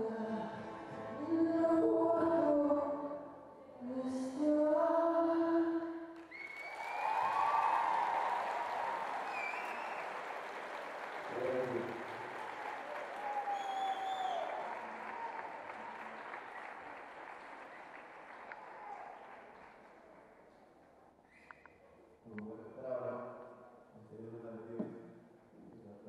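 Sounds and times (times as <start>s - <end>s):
whistles: 6.2s - 10.3s, 12.6s - 15.5s, 21.3s - 21.8s
audience applauding and cheering: 6.2s - 20.2s.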